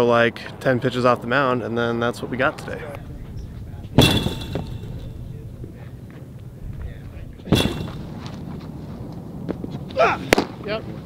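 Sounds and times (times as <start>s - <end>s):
low outdoor background: 0.0s - 11.0s
baseball striking target: 3.5s - 8.4s.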